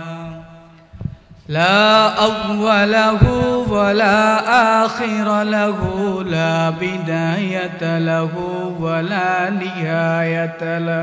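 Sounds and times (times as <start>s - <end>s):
man chanting melodically: 0.0s - 11.0s.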